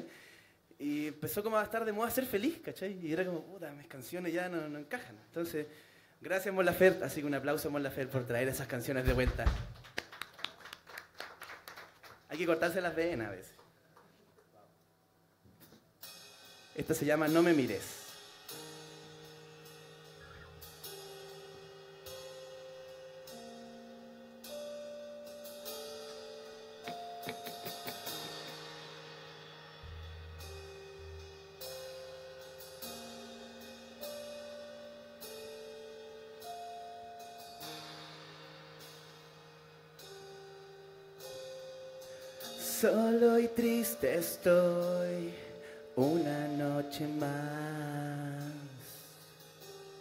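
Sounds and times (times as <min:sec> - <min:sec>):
soft held chords: 0:16.8 - 0:50.0.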